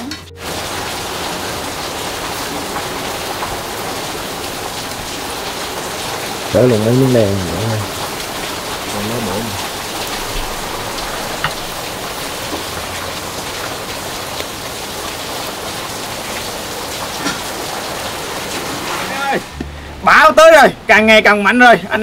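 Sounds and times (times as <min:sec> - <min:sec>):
rain: 0:00.0 - 0:22.0
man's voice: 0:06.5 - 0:07.9, 0:08.9 - 0:09.6, 0:18.9 - 0:22.0.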